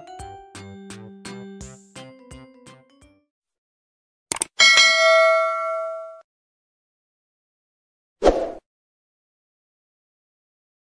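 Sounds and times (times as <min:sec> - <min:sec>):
notification bell ding: 0:04.6 - 0:06.2.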